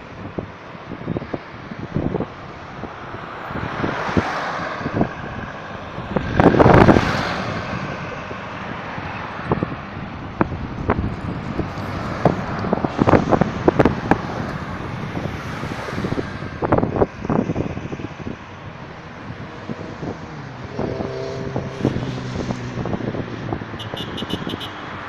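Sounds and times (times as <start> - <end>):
wind buffeting microphone: 0.0 - 24.0
cars driving past: 0.0 - 25.0
passing engine tone: 19.4 - 23.0.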